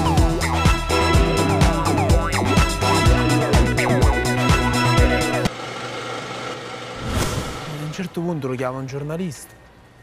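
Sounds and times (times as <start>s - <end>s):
upbeat disco music: 0.0s - 5.4s.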